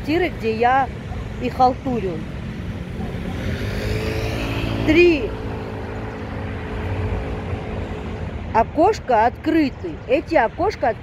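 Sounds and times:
street traffic noise: 0:00.0 - 0:11.0
vehicle engine approaching: 0:00.0 - 0:11.0.

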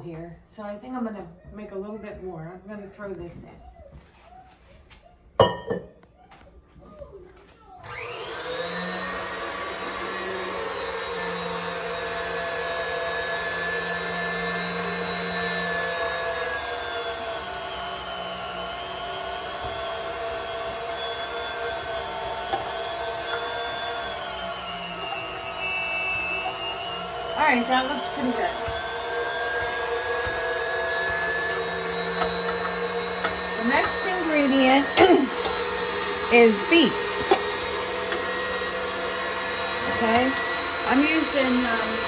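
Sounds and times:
stand mixer motor grinding meat: 0:07.8 - 0:42.0.

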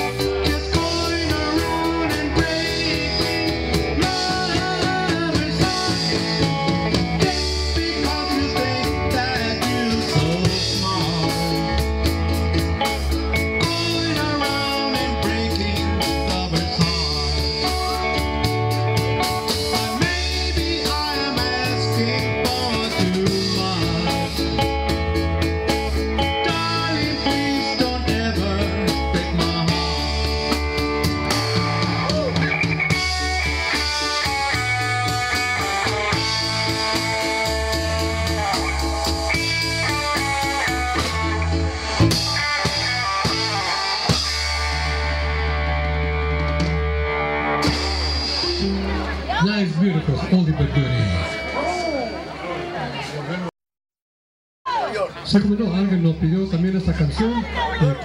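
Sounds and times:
live rock band playing: 0:00.0 - 0:53.3, 0:54.7 - 0:58.0.

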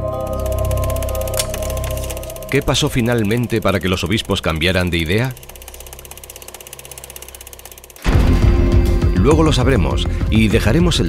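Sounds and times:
low hum: 0:00.0 - 0:09.1
film projector clatter: 0:00.1 - 0:08.2.

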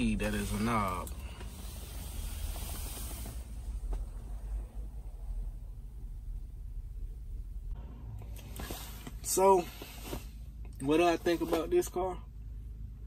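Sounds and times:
low rumble inside car cabin: 0:00.0 - 0:13.0.

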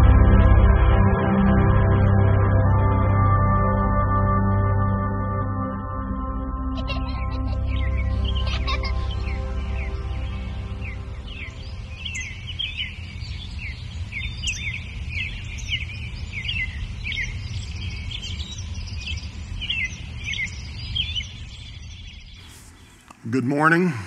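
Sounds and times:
songbirds chirping: 0:06.9 - 0:24.0.

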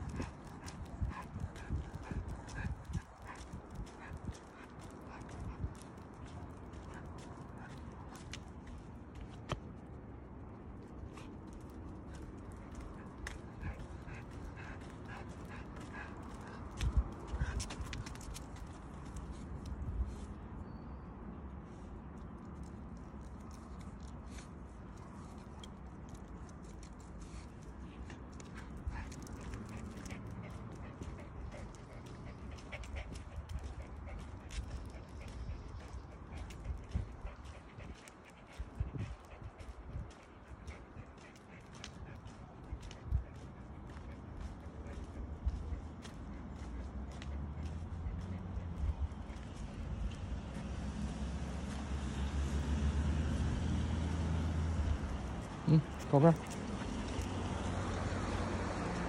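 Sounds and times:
footsteps and claws on asphalt: 0:00.0 - 0:59.0.

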